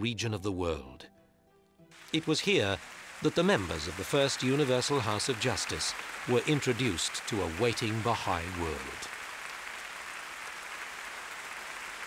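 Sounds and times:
large audience applauding: 0:02.0 - 0:12.0.

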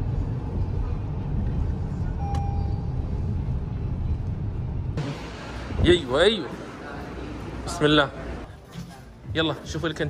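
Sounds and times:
short beep: 0:02.2 - 0:03.0.

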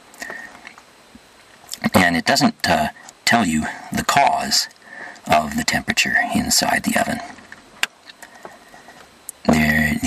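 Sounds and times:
man speaking: 0:01.7 - 0:07.4, 0:09.4 - 0:10.0.

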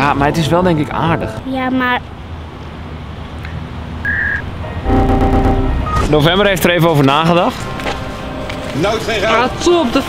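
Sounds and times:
steady electronic tone: 0:04.0 - 0:06.5
brief electronic blip: 0:04.1 - 0:06.2
short high beep: 0:04.1 - 0:06.2.

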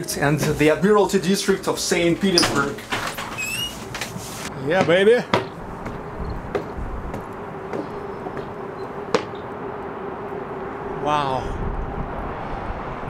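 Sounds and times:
faint constant hum: 0:00.0 - 0:11.8
city background noise: 0:00.0 - 0:13.0
footsteps on steel stairs: 0:02.4 - 0:09.6.

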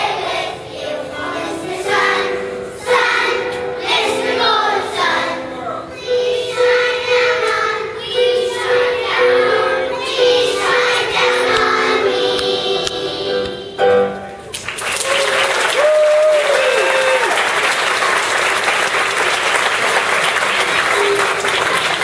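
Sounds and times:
children singing in unison: 0:00.0 - 0:14.1.

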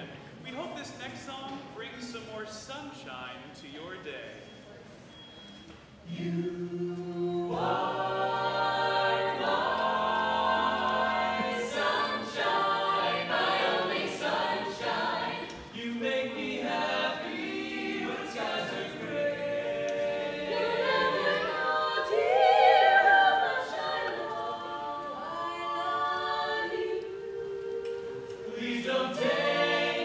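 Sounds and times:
a cappella choir singing: 0:06.0 - 0:30.0.

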